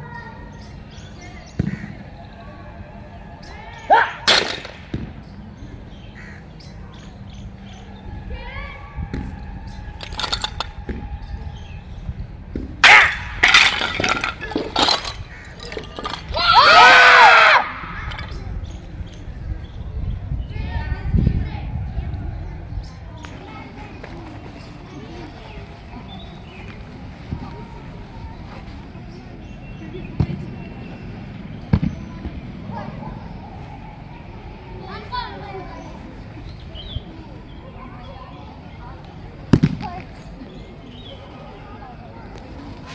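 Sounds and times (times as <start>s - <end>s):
sharp crack: 4.2s - 5.2s, 39.5s - 40.2s
rattle of small knocks: 10.0s - 11.0s, 13.4s - 16.4s
crash of breaking tiles: 13.2s - 16.3s
faint background voices: 17.6s - 42.9s.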